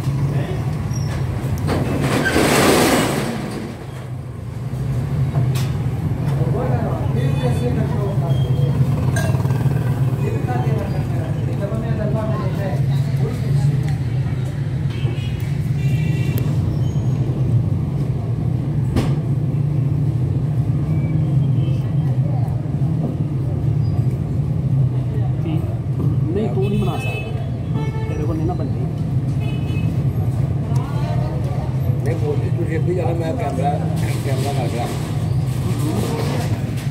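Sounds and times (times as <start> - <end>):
engine traffic hum: 0.0 - 36.9.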